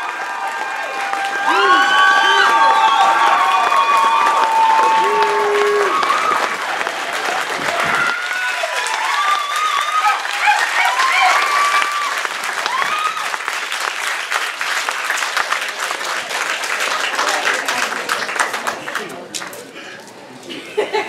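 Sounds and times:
audience applauding: 0:00.0 - 0:19.8.

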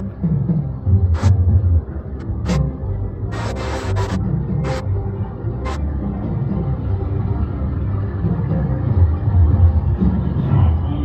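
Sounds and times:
ride background music: 0:00.0 - 0:11.0.

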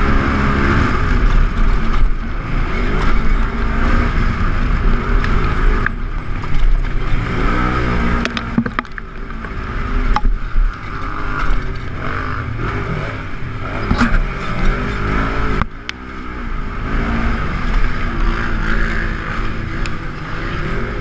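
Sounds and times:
engine racing under throttle: 0:00.0 - 0:21.0
chassis knocks and rattles: 0:08.1 - 0:12.1.

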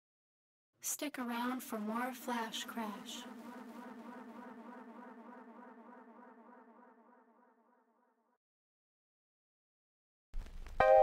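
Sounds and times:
buzzy wobbling synth drone: 0:02.3 - 0:07.7.

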